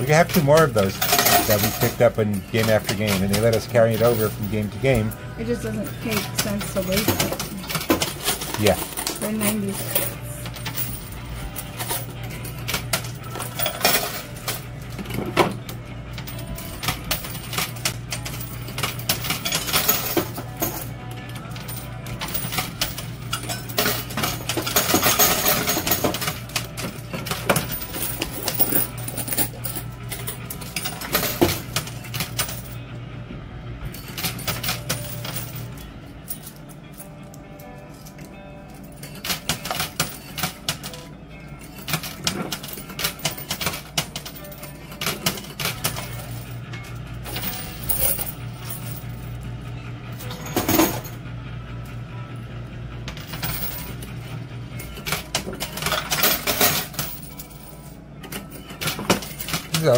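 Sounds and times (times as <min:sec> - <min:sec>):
coins clinking and dropping: 0:00.0 - 0:32.8, 0:33.9 - 0:49.5, 0:50.2 - 0:51.2, 0:53.1 - 0:59.9.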